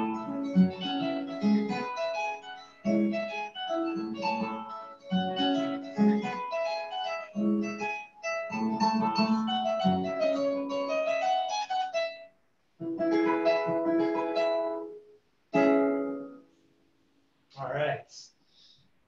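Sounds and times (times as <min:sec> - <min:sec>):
plucked harp notes: 0:00.0 - 0:12.2.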